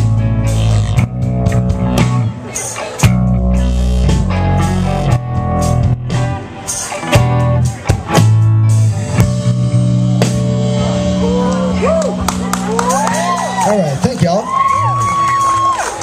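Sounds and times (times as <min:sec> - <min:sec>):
bass guitar: 0:00.0 - 0:16.0
drum kit: 0:00.0 - 0:16.0
electric guitars: 0:00.0 - 0:16.0.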